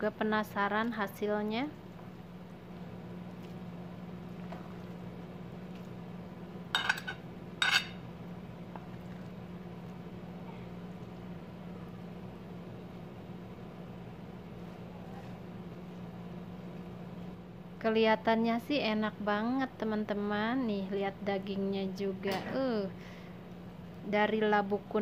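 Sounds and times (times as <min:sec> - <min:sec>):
steady low hum: 0:00.0 - 0:25.0
utensil clinking against dishes: 0:06.7 - 0:08.0.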